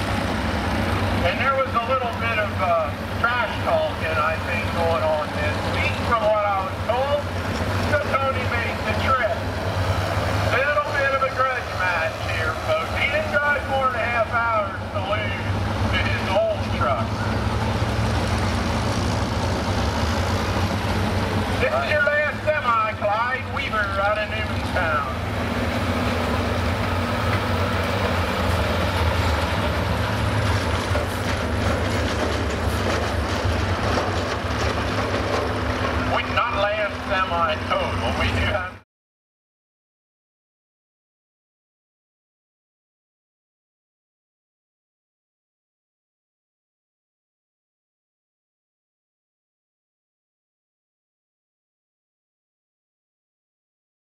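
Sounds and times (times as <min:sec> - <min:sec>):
diesel truck engine under load: 0:00.0 - 0:38.8
person talking: 0:10.5 - 0:17.1, 0:21.6 - 0:25.2, 0:36.1 - 0:38.8.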